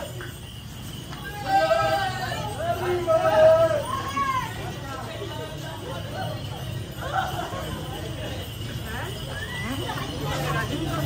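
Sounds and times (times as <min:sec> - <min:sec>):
men talking and calling out: 0:00.0 - 0:11.0.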